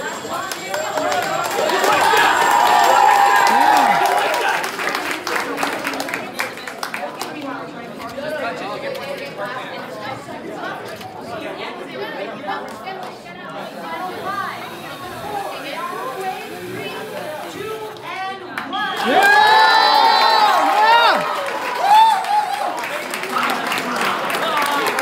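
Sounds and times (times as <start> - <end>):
crowd shouting and cheering: 0.0 - 6.7, 13.6 - 25.0
crowd chattering: 0.0 - 25.0.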